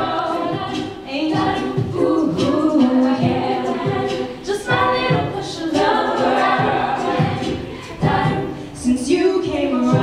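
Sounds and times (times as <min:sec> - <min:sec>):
vocal percussion thumps: 0:00.0 - 0:10.0
women singing in harmony: 0:00.0 - 0:10.0.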